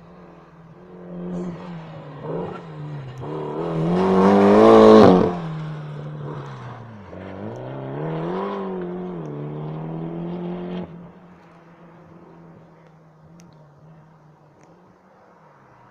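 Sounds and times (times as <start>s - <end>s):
rally car engine revving: 0.2s - 15.4s.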